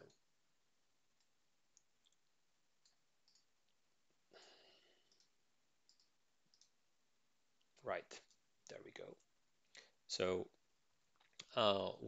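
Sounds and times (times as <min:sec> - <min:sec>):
computer clicks: 0:02.8 - 0:03.5, 0:05.0 - 0:06.8.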